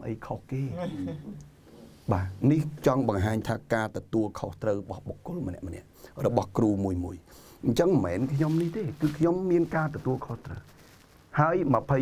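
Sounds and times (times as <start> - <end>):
man talking: 0.0 - 1.3, 2.1 - 12.0.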